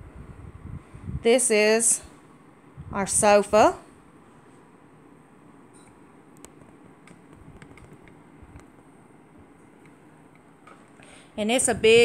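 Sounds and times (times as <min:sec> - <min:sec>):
faint clicks and taps: 0:05.8 - 0:08.8, 0:09.6 - 0:11.0.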